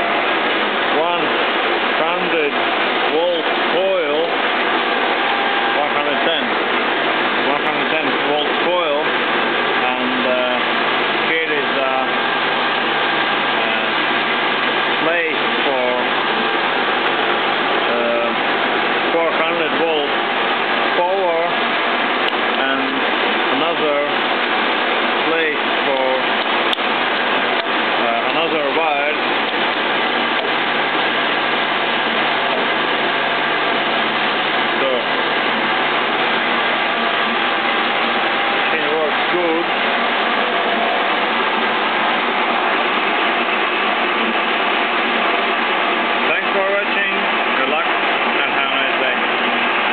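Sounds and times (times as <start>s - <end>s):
steady machine noise: 0.0s - 49.9s.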